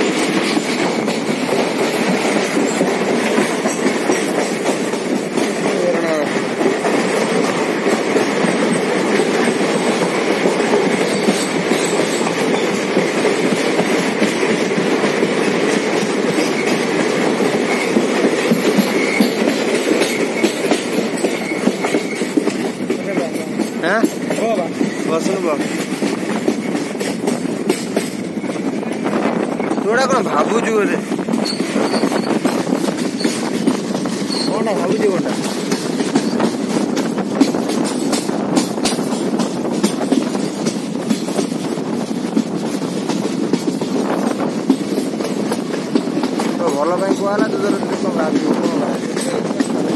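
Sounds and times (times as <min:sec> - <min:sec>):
train running through tunnel: 0:00.0 - 0:49.9.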